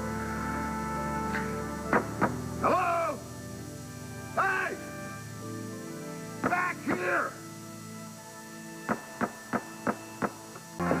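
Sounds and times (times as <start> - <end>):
dramatic underscore music: 0.0 - 11.0.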